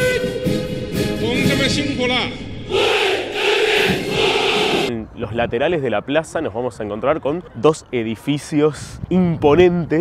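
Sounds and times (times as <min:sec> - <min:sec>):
soldiers shouting in unison: 0:02.7 - 0:04.9.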